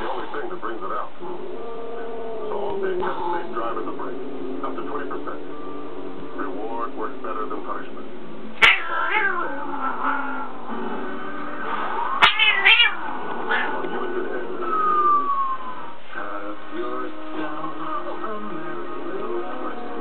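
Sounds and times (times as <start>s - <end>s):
television speech and music: 0.0s - 20.0s
cat meowing sharply: 8.6s - 9.4s, 12.2s - 13.0s.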